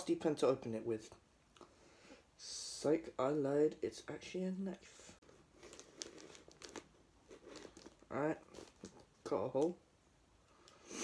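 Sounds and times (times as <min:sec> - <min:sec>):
plastic bag crinkling and clicking: 0:05.5 - 0:09.8.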